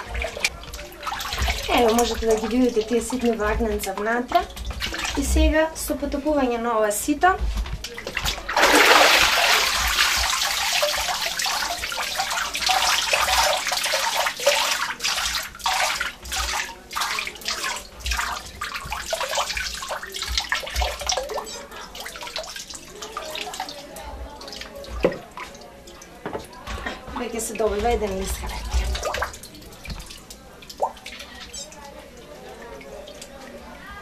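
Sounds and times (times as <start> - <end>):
water pouring off a sieve: 0.0 - 5.3, 7.8 - 33.8
water dripping: 0.0 - 34.0.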